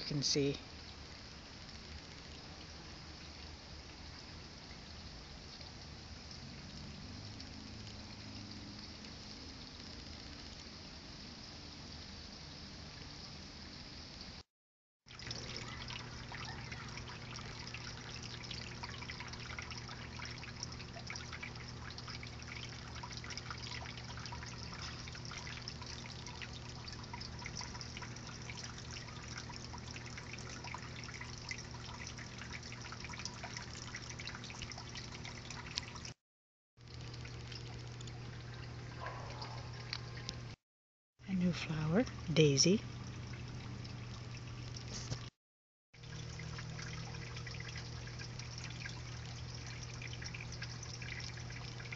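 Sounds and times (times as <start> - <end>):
trickling water: 0.0 - 14.4, 15.1 - 36.2, 36.8 - 40.6, 41.2 - 45.4, 46.0 - 51.9
faint low hum: 15.1 - 36.1, 36.9 - 40.6, 46.0 - 51.9.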